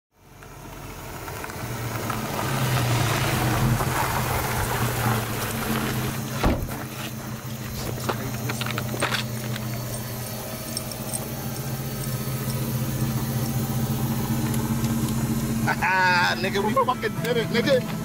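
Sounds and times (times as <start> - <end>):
car engine humming: 0.2 - 18.0.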